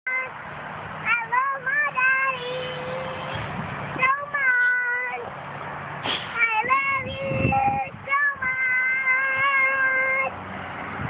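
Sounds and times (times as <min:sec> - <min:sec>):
girl singing in a high voice: 0:00.1 - 0:00.4, 0:01.0 - 0:05.3, 0:06.3 - 0:10.4.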